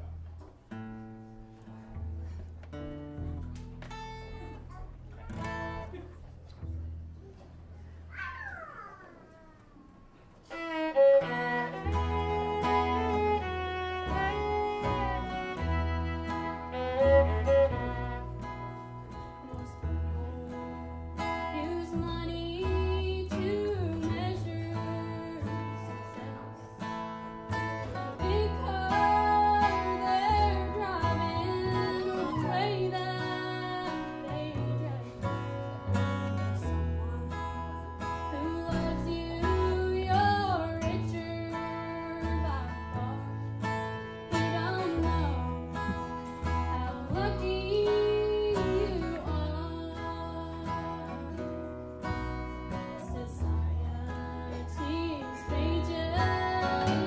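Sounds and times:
fiddle playing: 10.5s - 20.6s
strummed acoustic guitar: 10.5s - 57.0s
upright bass: 11.0s - 57.0s
young woman singing: 19.5s - 26.9s, 27.9s - 35.7s, 36.6s - 51.6s, 52.8s - 57.0s.

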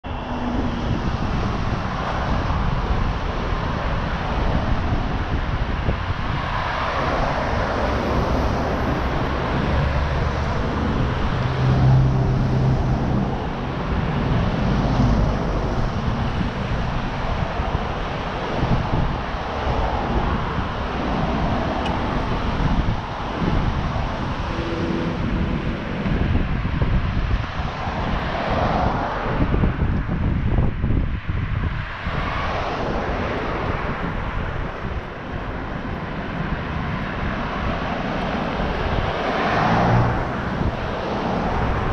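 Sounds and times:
cars driving past: 0.0s - 41.9s
wind rumbling on microphone: 0.0s - 41.9s.

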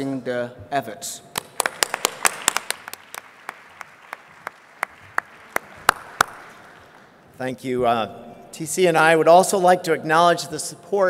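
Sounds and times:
audience applauding: 1.4s - 7.2s.

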